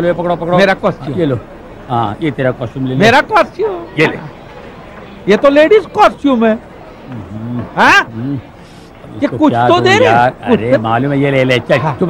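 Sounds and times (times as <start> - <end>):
man muttering: 7.1 - 8.4.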